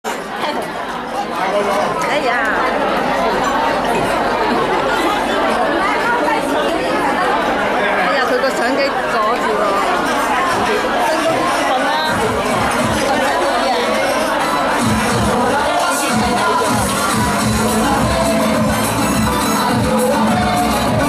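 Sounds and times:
audience chatting in hall: 0:00.0 - 0:21.0.

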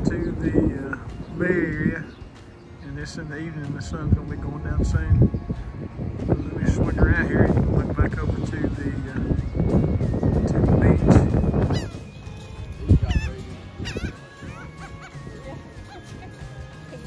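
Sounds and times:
quiet background music: 0:00.0 - 0:17.0
wind buffeting microphone: 0:00.0 - 0:17.0
gull calls: 0:11.6 - 0:16.2.

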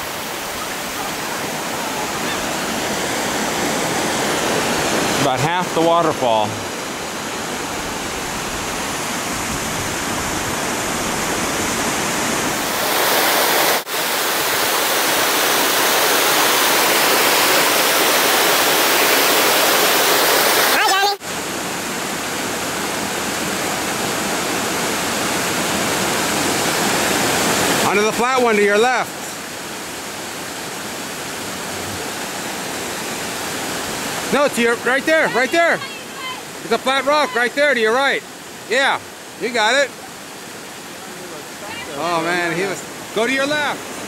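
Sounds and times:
waterfall rushing over rocks: 0:00.0 - 0:44.0.

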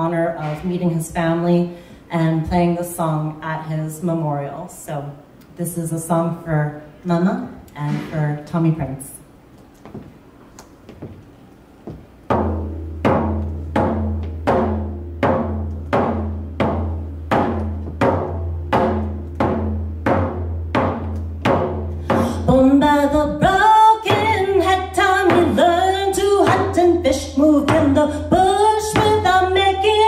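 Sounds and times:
hand drum beat: 0:12.3 - 0:22.7
woman singing: 0:22.1 - 0:30.0.

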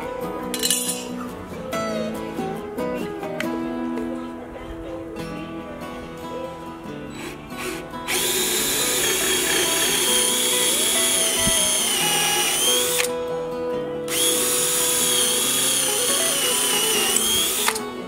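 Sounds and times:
guitar music: 0:00.0 - 0:18.0
cordless drill whining: 0:07.1 - 0:13.1, 0:14.1 - 0:17.8.

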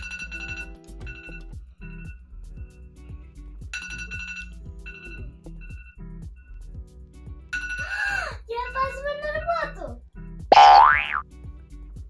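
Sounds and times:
tone gliding upward: 0:10.5 - 0:11.2.

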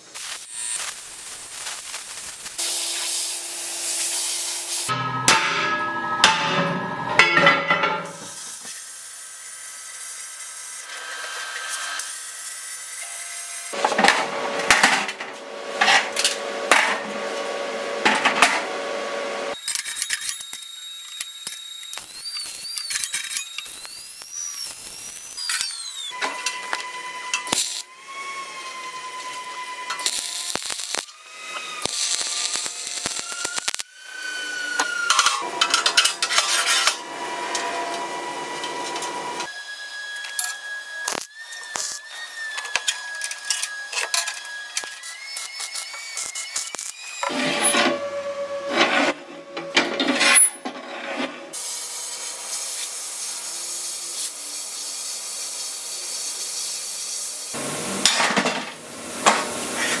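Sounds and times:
welder hissing crackle: 0:00.0 - 0:04.9, 0:08.2 - 0:13.8, 0:20.7 - 0:27.9, 0:29.8 - 0:34.0, 0:40.2 - 0:44.0, 0:44.6 - 0:47.3, 0:51.5 - 0:57.8
hammer striking ringing steel: 0:04.9 - 0:08.3.

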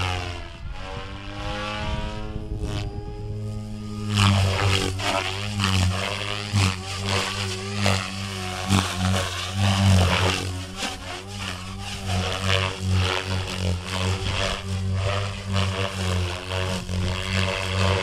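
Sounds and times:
electric motor whining: 0:00.0 - 0:18.0
helicopter rotor blades chopping: 0:00.0 - 0:18.0.

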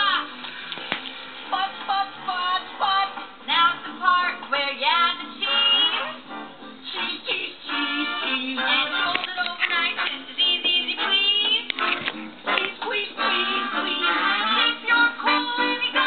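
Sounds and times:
children's song from television: 0:00.0 - 0:16.0.

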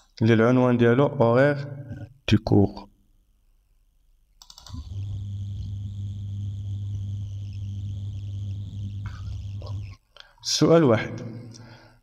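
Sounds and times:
low hum with hiss: 0:00.0 - 0:12.0.

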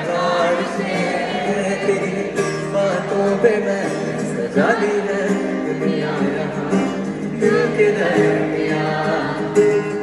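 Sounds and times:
crowd singing along: 0:00.0 - 0:10.0
live concert music: 0:00.0 - 0:10.0.

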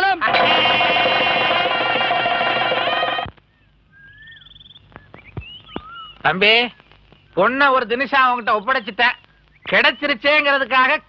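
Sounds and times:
loud sustained chord: 0:00.2 - 0:03.3
faint bird chirps: 0:03.5 - 0:07.4, 0:08.5 - 0:10.2.

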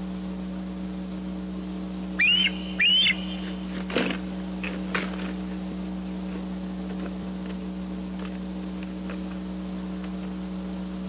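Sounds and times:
low electrical hum: 0:00.0 - 0:11.0
eagle whistled calls: 0:02.2 - 0:03.8.

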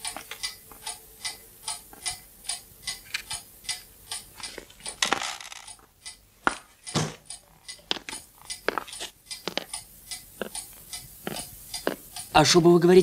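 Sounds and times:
clock ticking: 0:00.0 - 0:13.0.

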